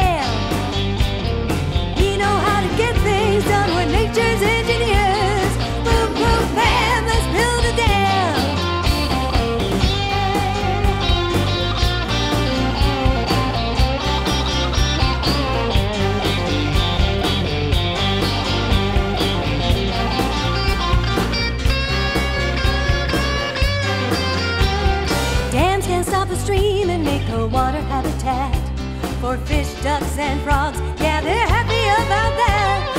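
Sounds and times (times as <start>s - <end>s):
upbeat band song: 0.0s - 32.9s
fiddle: 9.3s - 25.8s.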